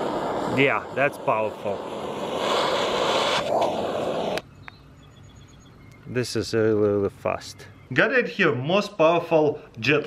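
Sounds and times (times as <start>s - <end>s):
torch lighter flame hissing: 0.0s - 4.4s.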